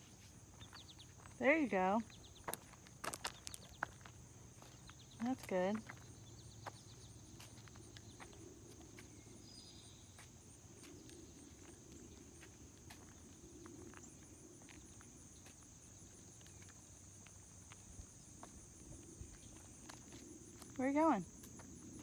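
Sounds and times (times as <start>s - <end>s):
high-pitched insect chorus: 0.0s - 22.0s.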